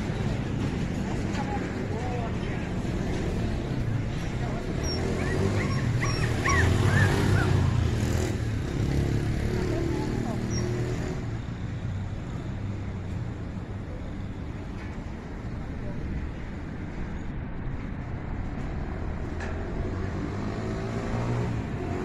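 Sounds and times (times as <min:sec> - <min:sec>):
small dog whimpering: 0:04.8 - 0:07.8.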